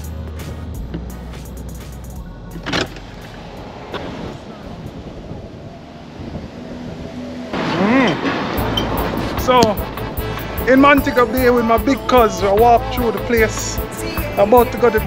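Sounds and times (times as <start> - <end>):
music playing: 0.0 - 5.1, 8.6 - 15.0
road and engine noise inside car: 0.0 - 9.1.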